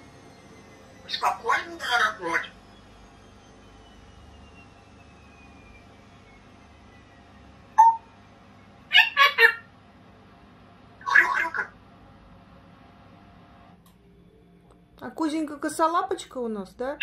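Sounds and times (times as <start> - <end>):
parrot calls: 1.0 - 2.6, 8.9 - 9.7, 11.0 - 11.8.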